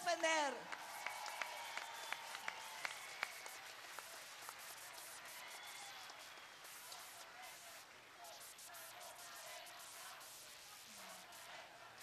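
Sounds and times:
faint audience applause: 0.0s - 8.5s
steady hiss: 0.8s - 12.0s.

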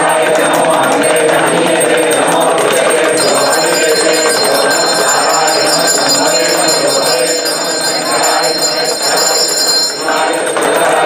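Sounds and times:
handheld bell ringing: 0.0s - 11.0s
voices chanting: 0.0s - 11.0s.

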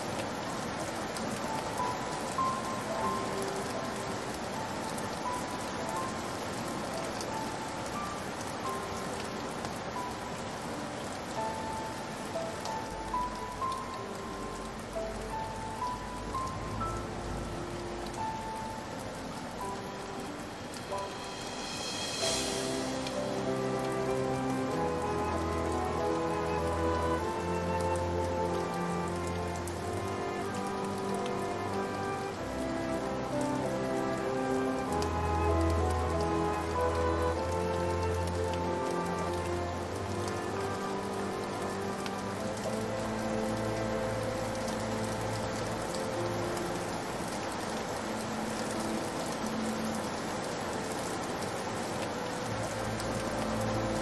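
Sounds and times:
falling rain: 0.0s - 54.0s
slow piano music: 0.0s - 54.0s.

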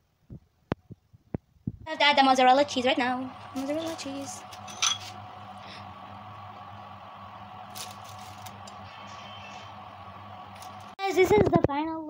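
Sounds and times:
steady tonal hum: 1.9s - 11.0s.

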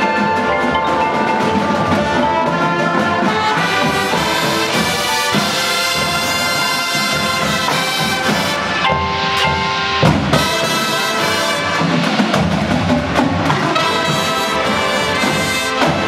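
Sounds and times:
brass horns holding chords: 1.4s - 12.4s, 13.4s - 16.0s
sharp drum hits: 3.8s - 16.0s.

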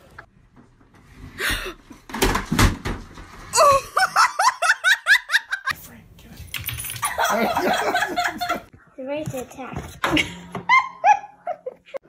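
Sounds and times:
television crashing onto floor: 2.1s - 3.5s.

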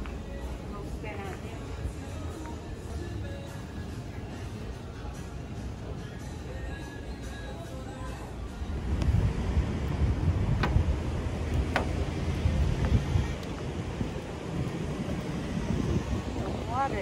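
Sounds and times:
wind buffeting microphone: 8.6s - 17.0s.

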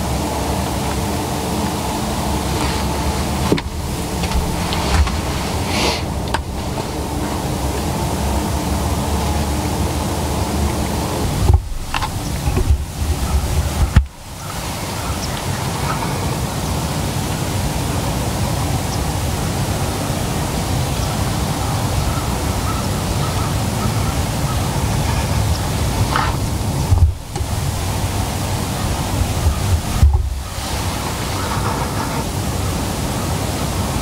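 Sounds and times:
wind hiss on microphone: 0.0s - 34.0s
sharp knocks: 11.4s - 14.3s, 26.1s - 30.6s.

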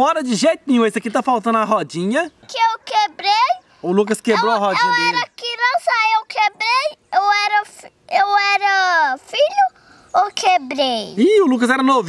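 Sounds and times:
young child speaking: 2.4s - 11.2s.

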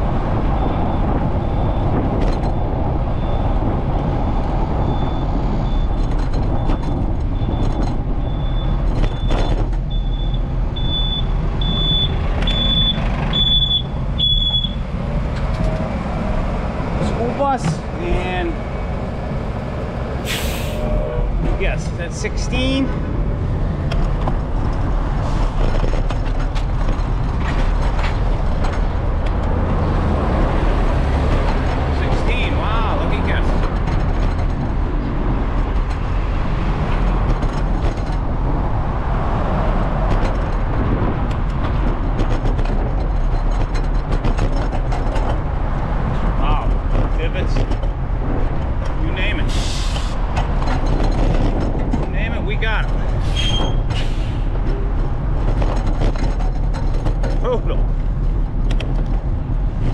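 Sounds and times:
wind noise on microphone: 0.0s - 17.2s, 18.6s - 59.9s
city street traffic: 0.0s - 59.9s
brief hiss: 20.2s - 21.0s.

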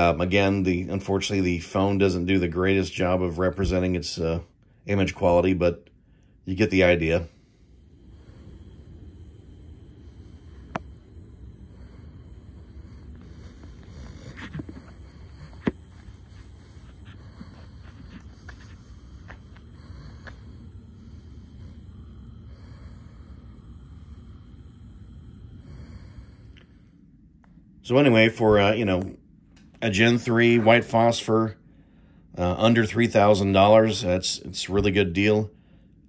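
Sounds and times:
high-pitched hiss: 0.0s - 27.0s
steady low rumble: 0.0s - 36.0s.

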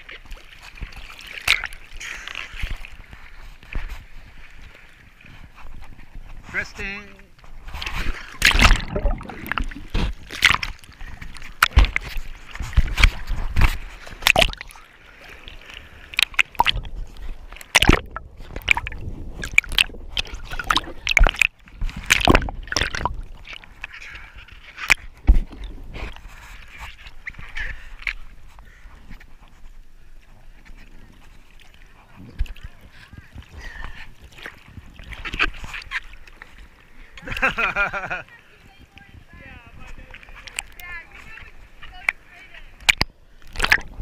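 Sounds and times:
water lapping: 0.0s - 44.0s
water splashing and sloshing: 0.0s - 44.0s.

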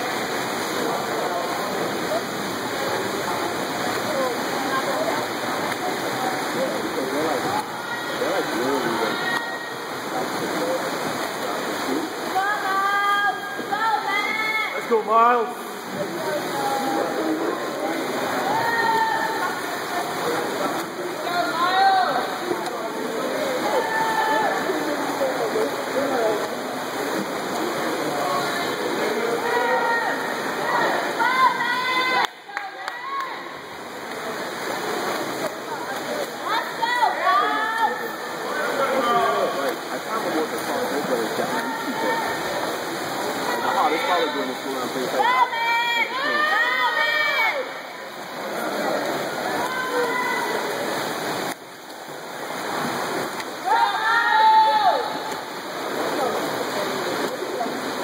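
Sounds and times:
swimmers splashing water: 0.0s - 58.0s
spectators shouting: 18.4s - 19.5s, 45.2s - 47.9s, 53.6s - 55.3s.

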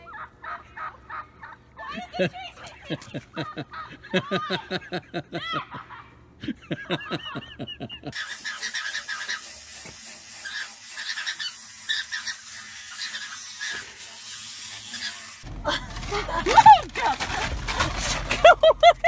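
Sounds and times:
person laughing: 0.0s - 8.2s, 15.6s - 17.5s, 18.3s - 19.0s
toothbrush scrubbing teeth: 8.2s - 15.4s.

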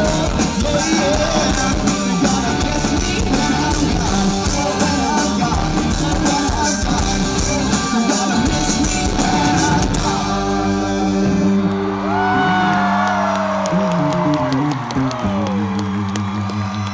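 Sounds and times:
live rock band playing: 0.0s - 16.9s.

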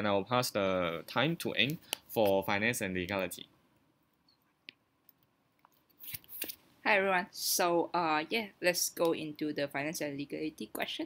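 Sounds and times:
person speaking: 0.0s - 3.6s.

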